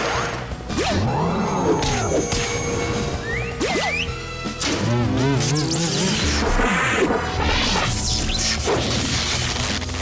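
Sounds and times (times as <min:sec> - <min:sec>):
cartoon action music: 0:00.0 - 0:09.4.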